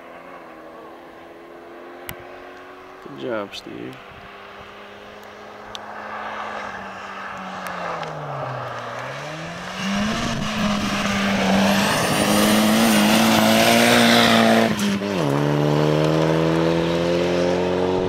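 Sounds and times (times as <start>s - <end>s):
rally car engine at high revs: 3.9s - 18.0s.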